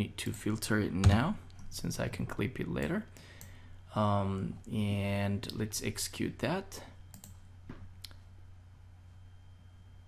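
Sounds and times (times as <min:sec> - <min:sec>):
faint low hum: 0:00.0 - 0:10.0
computer mouse clicks: 0:07.1 - 0:07.4.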